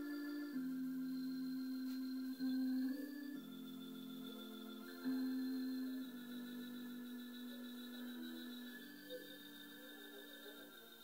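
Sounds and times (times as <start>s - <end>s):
sustained organ-like keyboard chords: 0.0s - 11.0s.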